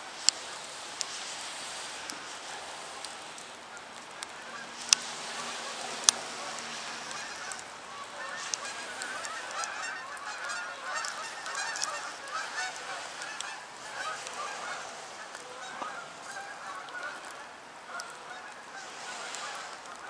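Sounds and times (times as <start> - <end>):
geese honking in flight: 0.3 - 20.0.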